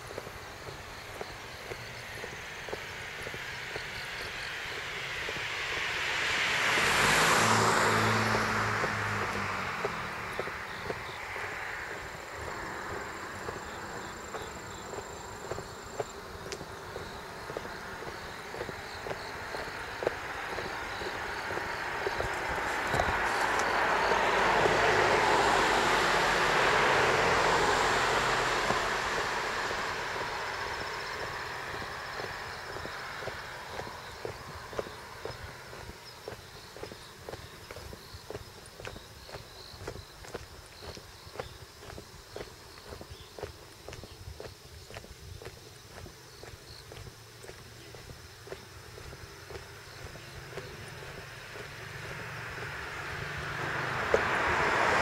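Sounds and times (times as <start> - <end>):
footsteps: 0.0 - 25.8, 28.2 - 55.0
road vehicles passing by: 0.0 - 55.0.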